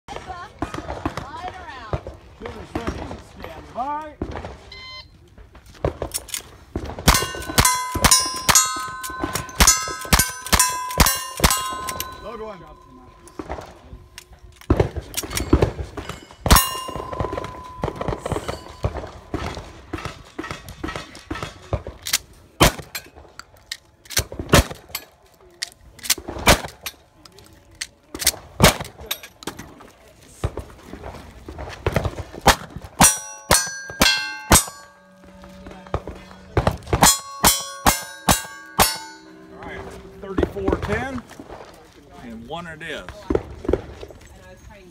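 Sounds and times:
gunshots: 5.8s - 12.2s, 14.7s - 22.0s, 26.2s - 26.8s, 31.8s - 41.6s
steel targets ringing: 7.1s - 13.8s, 15.4s - 19.6s, 33.0s - 41.8s.

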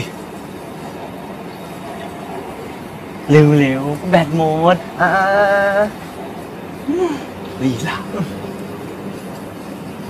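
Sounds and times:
outdoor background hum: 0.0s - 10.0s.

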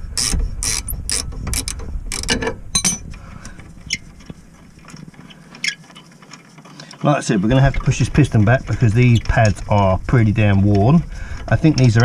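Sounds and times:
spanner ratcheting clicks: 0.2s - 3.6s.

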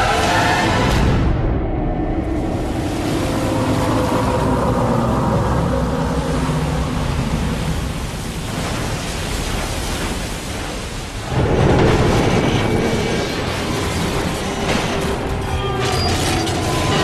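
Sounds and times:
ocean wave rushing: 2.0s - 15.3s.

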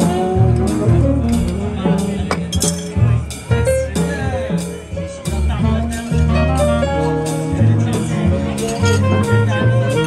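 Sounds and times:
drum kit: 0.0s - 10.0s
piano: 0.0s - 10.0s
walking double bass: 0.0s - 10.0s
reed horns: 8.7s - 10.0s.

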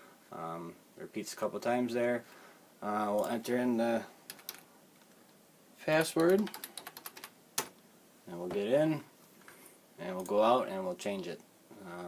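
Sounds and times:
computer keyboard keystrokes: 4.3s - 4.6s, 6.0s - 7.7s.

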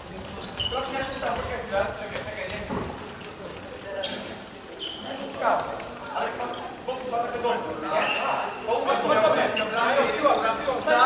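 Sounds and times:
players calling out in a hall: 0.0s - 11.0s
short high-pitched squeak: 7.9s - 8.6s.

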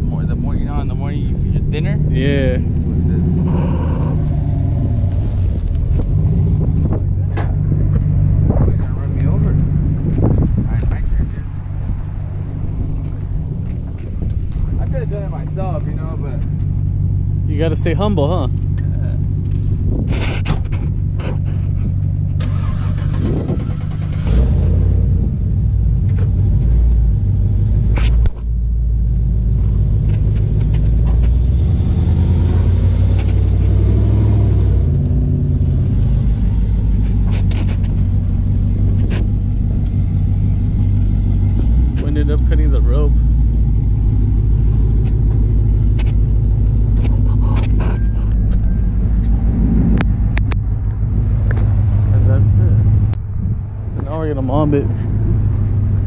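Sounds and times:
pickup truck engines running: 0.0s - 56.0s.

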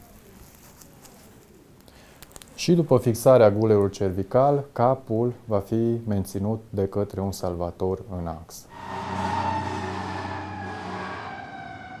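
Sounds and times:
emergency siren: 8.7s - 12.0s.

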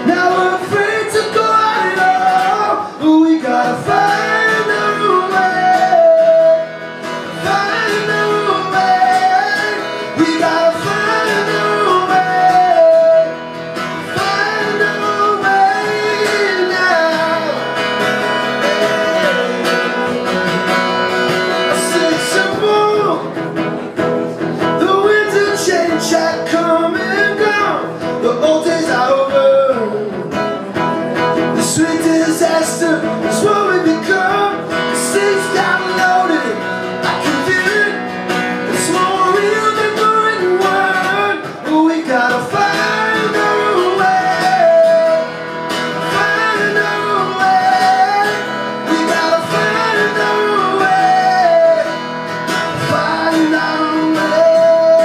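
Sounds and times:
man singing: 0.0s - 55.0s
strummed acoustic guitar: 0.0s - 55.0s.

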